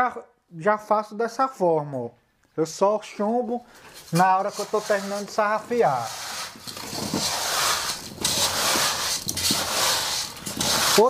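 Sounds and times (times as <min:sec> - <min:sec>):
straightedge scraping cement render: 0:03.8 - 0:11.0.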